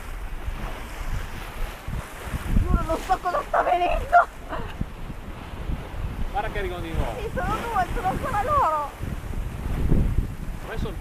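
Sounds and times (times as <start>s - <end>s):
choppy sea water rushing: 0.0s - 11.0s
wind buffeting microphone: 0.0s - 11.0s.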